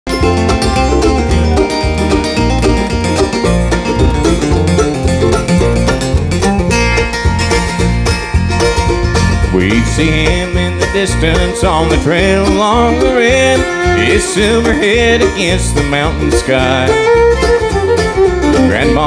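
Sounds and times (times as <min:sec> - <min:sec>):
acoustic guitar: 0:00.1 - 0:19.0
banjo rolls: 0:00.1 - 0:19.0
electric bass: 0:00.1 - 0:19.0
fiddle: 0:00.1 - 0:19.0
mandolin: 0:00.1 - 0:19.0
person singing: 0:09.5 - 0:17.6, 0:18.2 - 0:19.0.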